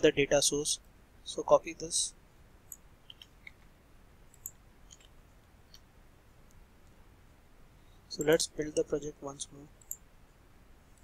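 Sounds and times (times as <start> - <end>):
mouse and keyboard clicks: 2.7 - 3.7, 4.3 - 5.1.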